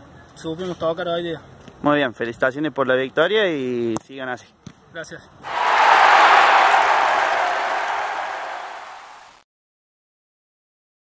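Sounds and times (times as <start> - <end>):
crowd roar: 5.5 - 9.4.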